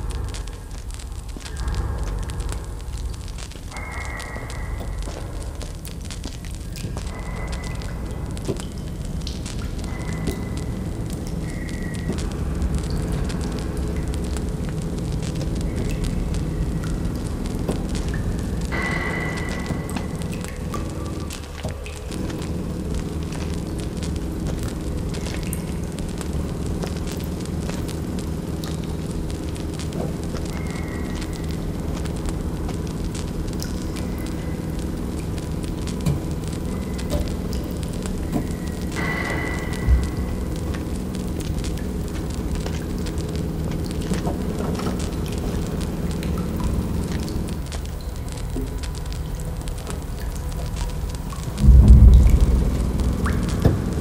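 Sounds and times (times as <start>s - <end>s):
low rumble: 0.0s - 54.0s
torch crackling: 0.0s - 54.0s.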